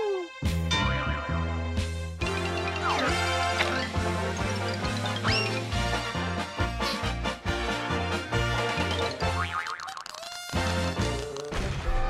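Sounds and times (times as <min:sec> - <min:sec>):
playful background music: 0:00.0 - 0:12.0.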